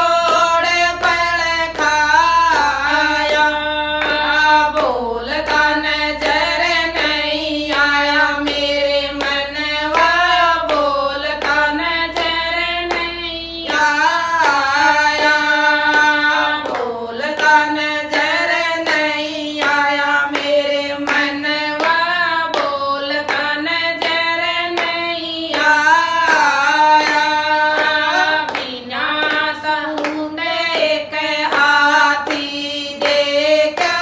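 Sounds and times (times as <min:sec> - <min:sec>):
hand claps: 0:00.0 - 0:34.0
women singing together: 0:00.0 - 0:34.0.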